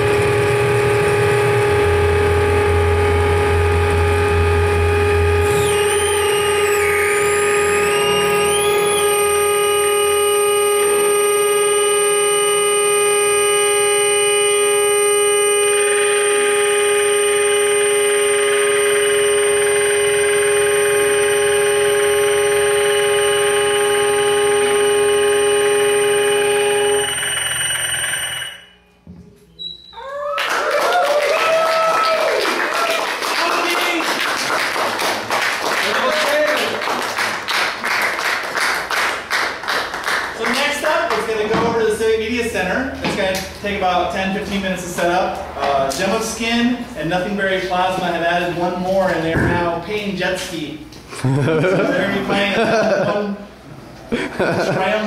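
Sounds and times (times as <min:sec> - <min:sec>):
low hum: 0:00.0 - 0:29.9
electronic drones and whines: 0:00.0 - 0:30.0
wavering high tones: 0:00.0 - 0:30.1.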